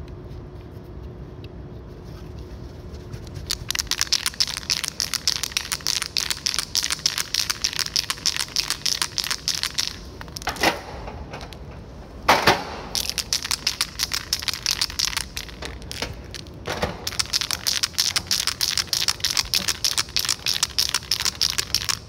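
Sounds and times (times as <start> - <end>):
spray paint can rattling: 3.3 - 11.7, 12.5 - 22.0.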